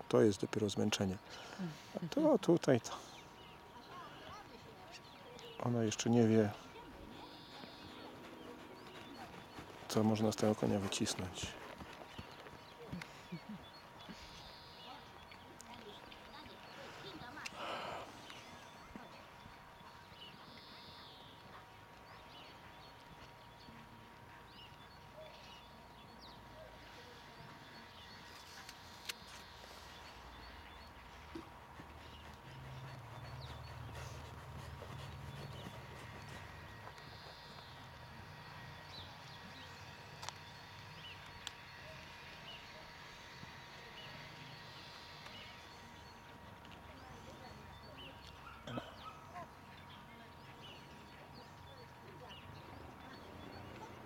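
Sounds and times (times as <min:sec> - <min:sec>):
muffled hoofbeats on sand: 0:06.6 - 0:17.4, 0:29.5 - 0:40.0.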